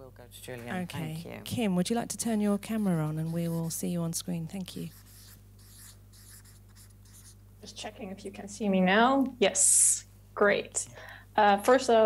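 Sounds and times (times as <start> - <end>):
low room hum: 0.0 - 12.0
marker pen scratching on paper: 1.6 - 7.4.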